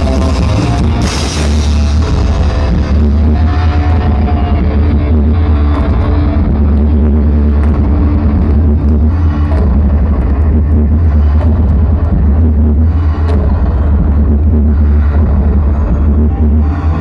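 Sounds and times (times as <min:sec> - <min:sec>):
electric guitar: 0:00.0 - 0:12.4
heavy bass: 0:00.0 - 0:17.0.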